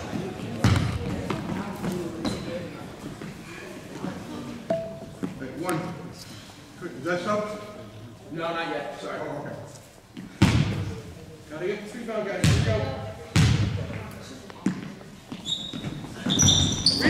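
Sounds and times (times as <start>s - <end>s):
basketball bouncing on gym floor: 0.1s - 1.6s, 10.4s - 10.9s, 12.4s - 14.9s
short high squeaks: 15.4s - 17.0s.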